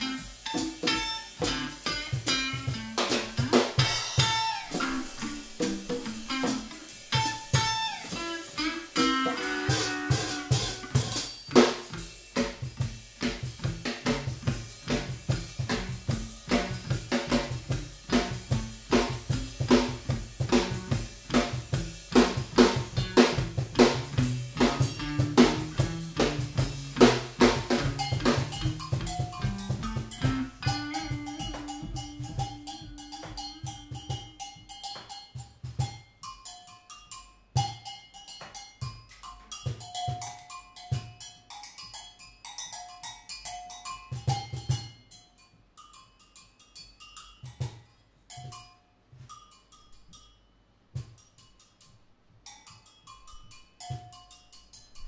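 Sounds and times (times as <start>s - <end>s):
electric guitar playing: 0.0s - 11.2s, 13.3s - 34.4s
drum kit playing: 0.0s - 36.0s.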